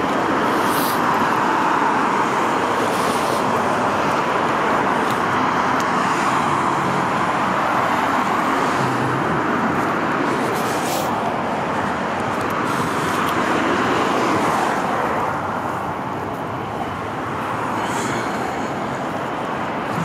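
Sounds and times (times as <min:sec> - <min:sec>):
freeway traffic rush: 0:00.0 - 0:20.0.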